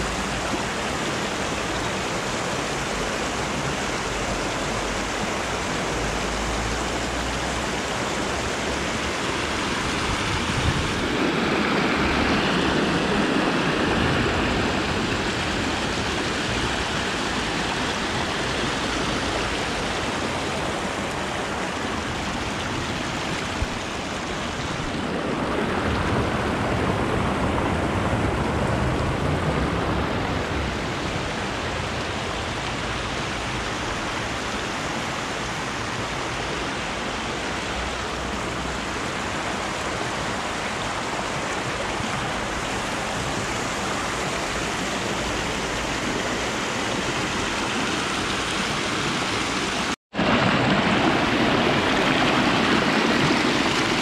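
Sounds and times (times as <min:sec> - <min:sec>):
river water rushing over rocks: 0:00.0 - 0:54.0.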